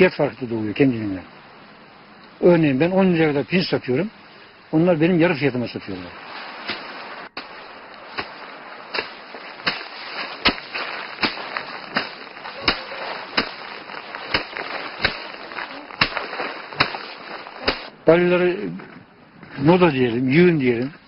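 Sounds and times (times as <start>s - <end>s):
rice sheaves being beaten: 6.2s - 18.0s.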